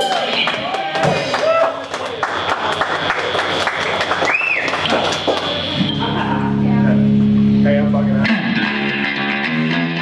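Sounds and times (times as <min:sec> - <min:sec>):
audience applauding: 0:00.0 - 0:05.8
electric guitar: 0:00.3 - 0:10.0
upright bass: 0:04.7 - 0:10.0.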